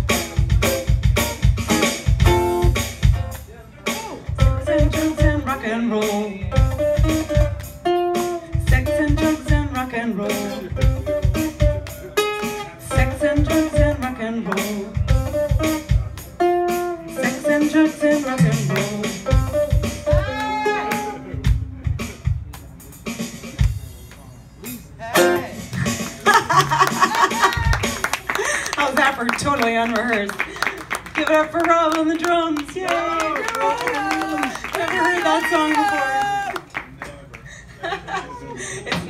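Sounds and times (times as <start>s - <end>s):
ukulele strummed: 0.0s - 21.8s, 25.2s - 26.8s
drum kit playing: 0.0s - 32.9s.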